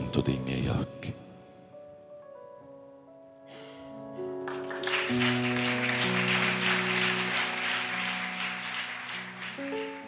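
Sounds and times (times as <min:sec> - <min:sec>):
instrumental music with held notes: 0:00.0 - 0:10.0
audience applause: 0:04.4 - 0:10.0.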